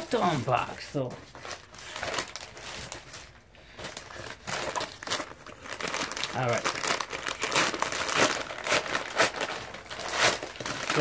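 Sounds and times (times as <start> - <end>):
paper envelope crinkling: 0.0 - 11.0.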